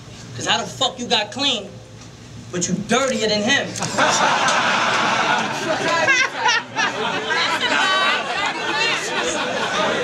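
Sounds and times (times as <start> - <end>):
crowd chatter: 3.8 - 10.0.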